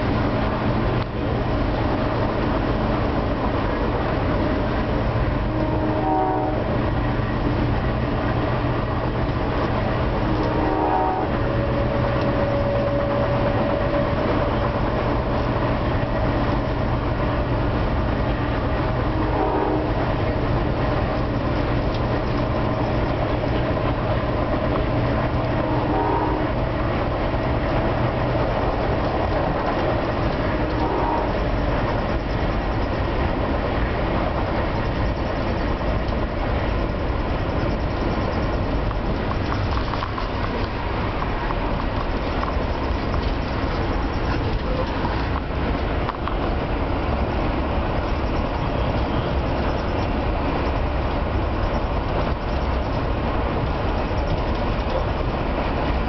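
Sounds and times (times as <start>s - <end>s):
train rumble and rush: 0.0s - 56.0s
faint train horn: 5.4s - 7.0s, 10.2s - 14.8s, 19.0s - 20.3s, 25.4s - 26.8s, 30.4s - 31.7s.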